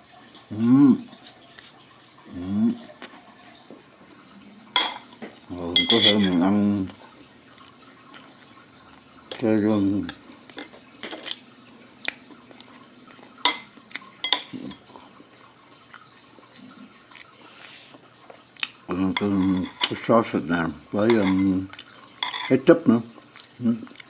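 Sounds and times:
fork scraping a plate: 19.2s - 20.0s.

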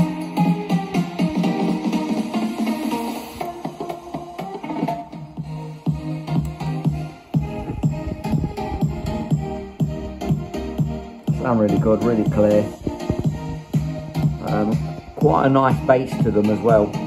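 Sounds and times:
instrumental music through speakers: 0.0s - 17.0s.

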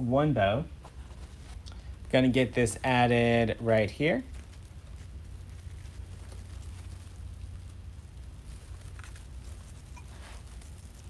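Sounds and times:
steady low hum: 0.0s - 11.0s
ribbon and mesh rustling: 0.8s - 11.0s.

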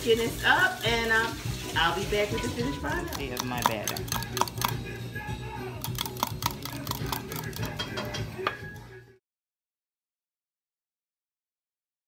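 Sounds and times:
whisk clinking against glass: 2.4s - 4.9s, 5.8s - 8.6s.

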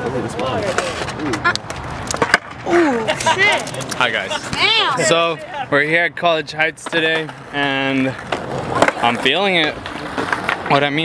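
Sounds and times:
skateboard clacks: 0.6s - 2.6s, 8.2s - 11.0s.

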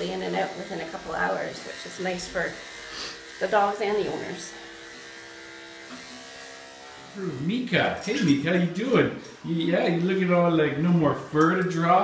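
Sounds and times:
electric clippers buzzing: 0.0s - 12.0s.

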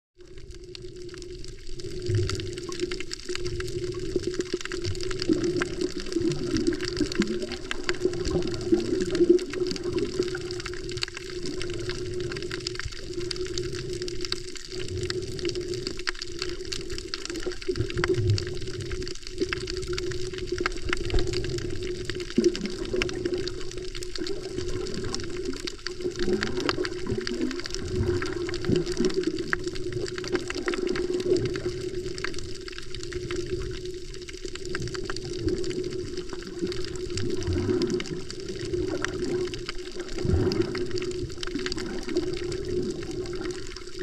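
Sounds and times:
underwater swishing and gurgling: 0.2s - 44.0s.

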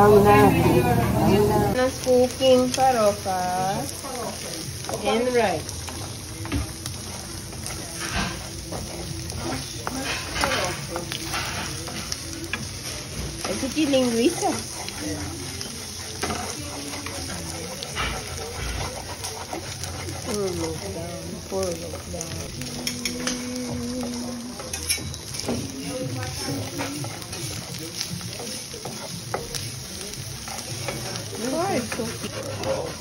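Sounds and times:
food sizzling in a frying pan: 0.0s - 33.0s
wooden spoon scraping a pan: 4.8s - 22.2s, 24.6s - 33.0s.

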